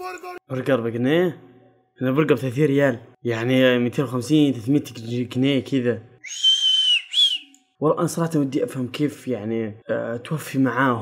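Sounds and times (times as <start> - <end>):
high whistle: 6.2 - 7.7.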